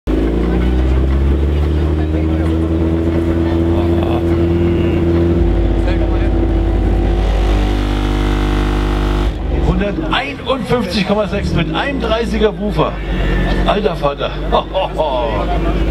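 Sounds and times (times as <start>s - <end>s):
deep subwoofer bass tone: 0.1s - 14.5s.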